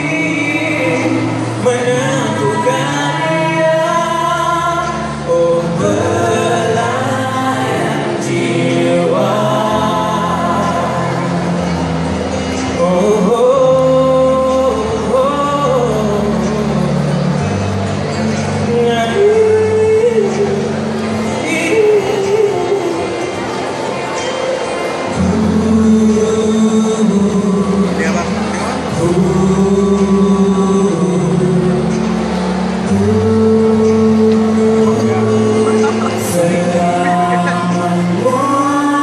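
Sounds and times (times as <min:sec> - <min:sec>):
vocal quartet singing in harmony: 0:00.0 - 0:39.0.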